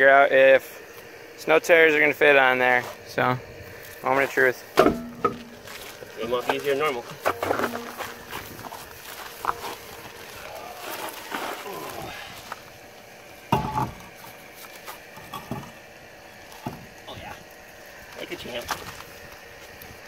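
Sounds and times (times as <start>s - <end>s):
loud wheel thud: 4.8s - 5.6s, 13.5s - 14.1s
wheel scraping and knocking: 4.8s - 10.1s, 13.5s - 14.1s.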